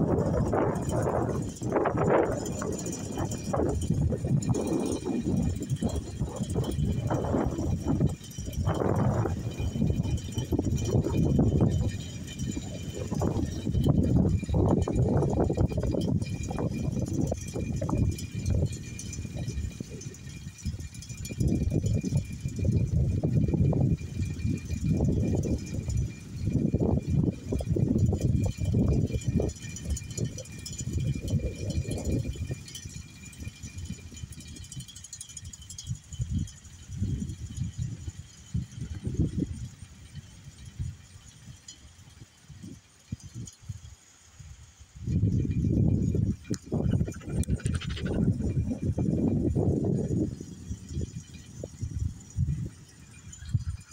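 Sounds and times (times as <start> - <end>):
wind on microphone: 0.0 - 53.9.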